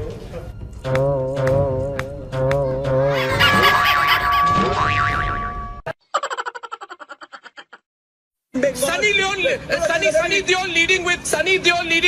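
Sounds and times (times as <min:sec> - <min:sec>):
music with a held tone: 0:00.0 - 0:05.6
cartoon boing sound effect: 0:02.4 - 0:05.9.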